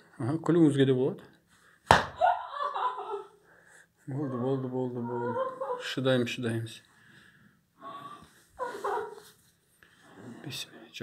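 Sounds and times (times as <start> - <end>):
hand slapping a body: 1.8 - 2.2
person's voice: 4.1 - 6.7.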